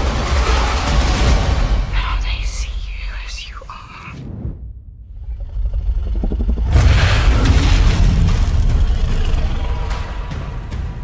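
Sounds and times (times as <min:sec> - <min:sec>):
person whispering: 0:01.9 - 0:04.3
deep steady rumble: 0:01.9 - 0:09.9.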